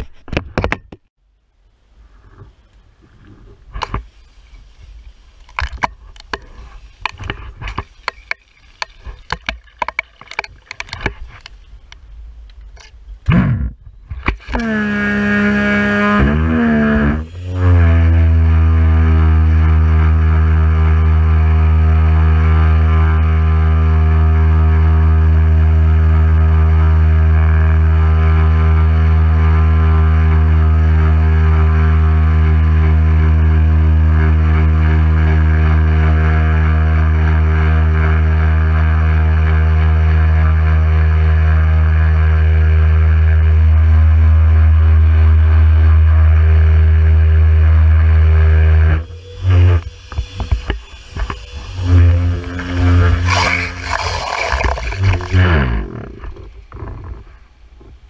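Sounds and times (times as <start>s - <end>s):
pressure washer spraying: 49.0s - 55.5s.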